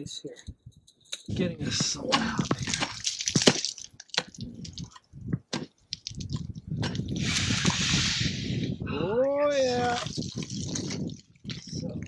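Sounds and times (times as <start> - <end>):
pickaxe striking ice: 1.9 - 4.4.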